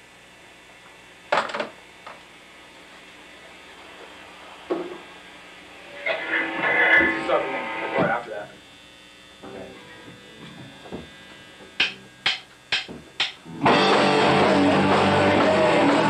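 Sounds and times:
amplifier electrical hum: 0:00.0 - 0:16.0
indistinct voice: 0:05.8 - 0:08.6.

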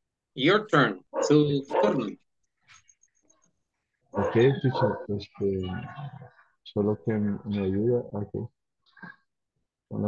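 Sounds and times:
person speaking over video call: 0:00.3 - 0:02.3, 0:04.0 - 0:09.2.

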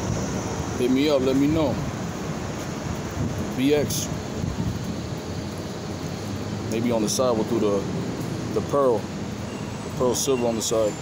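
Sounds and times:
low street rumble: 0:00.0 - 0:11.0.

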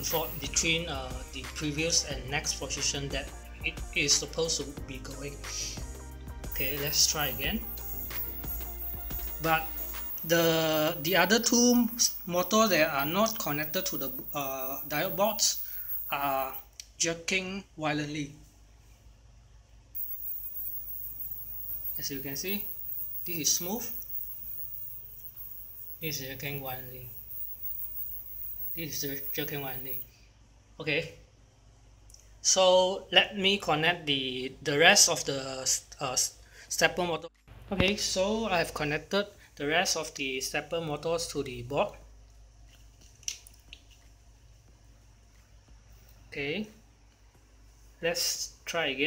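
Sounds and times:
faint electrical hum: 0:00.0 - 0:49.0.

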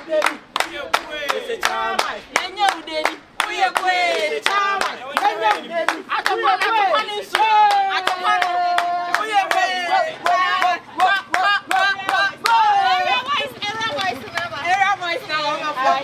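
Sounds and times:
group clapping in rhythm: 0:00.0 - 0:16.0
voices chanting: 0:00.0 - 0:16.0.

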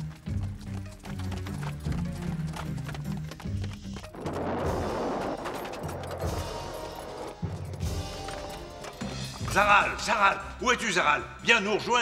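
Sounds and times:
dramatic background music: 0:00.0 - 0:11.5.

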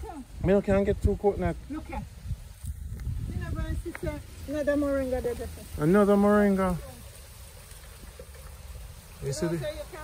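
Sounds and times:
faint outdoor hiss: 0:00.0 - 0:10.0
wind rumble on microphone: 0:00.2 - 0:04.7.

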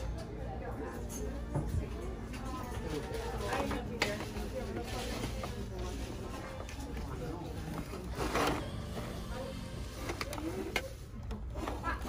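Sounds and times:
murmur of background voices: 0:00.0 - 0:12.0.

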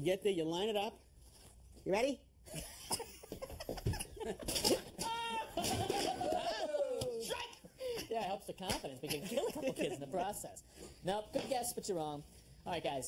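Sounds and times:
men laughing and calling out: 0:04.8 - 0:08.3.

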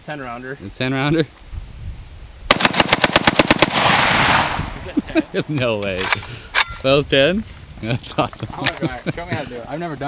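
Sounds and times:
rifle firing rapid shots: 0:02.5 - 0:04.6.

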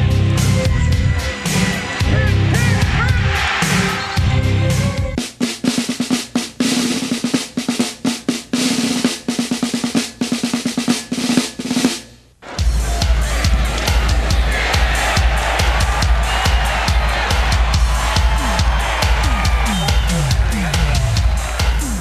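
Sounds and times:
music with heavy bass line: 0:00.0 - 0:05.2, 0:12.6 - 0:22.0
snare drum rolls: 0:05.2 - 0:22.0.

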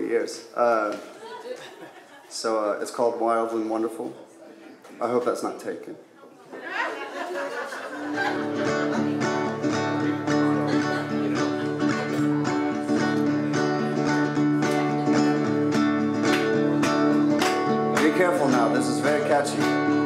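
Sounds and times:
acoustic guitar strumming: 0:08.0 - 0:20.0.

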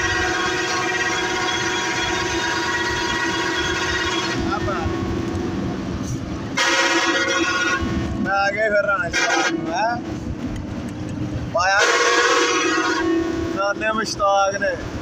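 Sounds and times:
bus air horn blasts: 0:00.0 - 0:05.2, 0:06.0 - 0:08.3, 0:09.0 - 0:10.0, 0:11.6 - 0:13.7
moving bus rumble: 0:00.0 - 0:15.0.

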